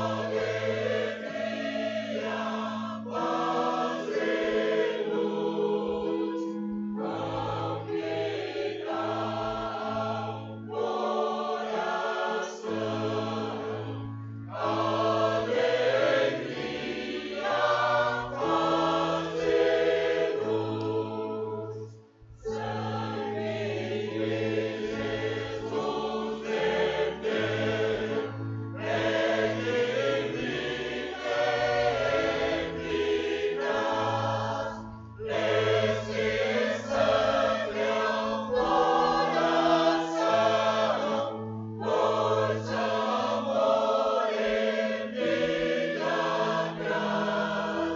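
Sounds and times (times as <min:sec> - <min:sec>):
choir singing a hymn: 0:00.0 - 0:47.9.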